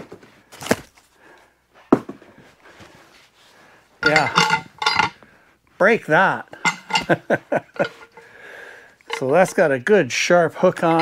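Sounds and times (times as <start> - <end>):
handling knocks and rustles: 4.0 - 5.3.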